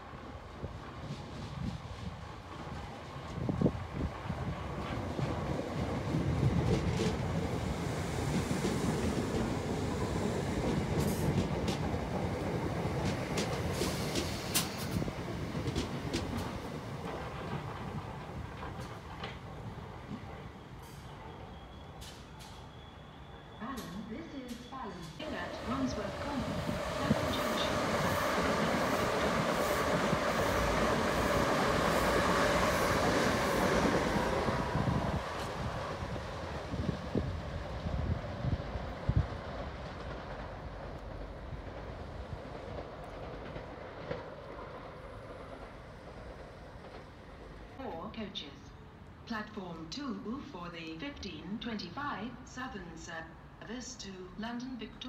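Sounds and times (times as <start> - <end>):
electric train passing at speed: 0.0 - 49.3
rail noise with sharp clicks: 0.0 - 55.0.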